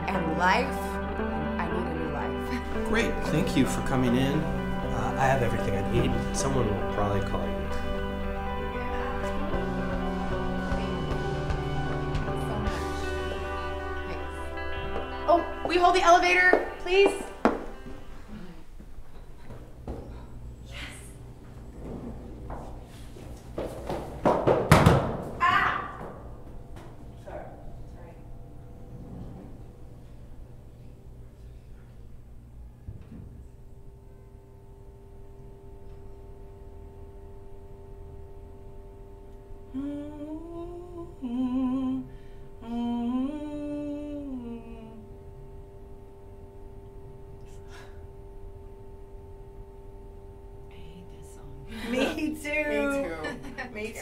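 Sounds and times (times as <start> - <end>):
quiet music: 0.0 - 24.4, 25.2 - 54.0
woman humming a slow tune: 7.2 - 21.3, 39.2 - 45.8
loud heavy thumps: 23.8 - 25.4.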